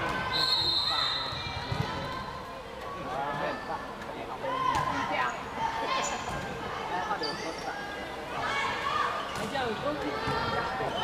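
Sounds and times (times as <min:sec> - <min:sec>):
shoe squeaks on court floor: 0:07.2 - 0:07.8.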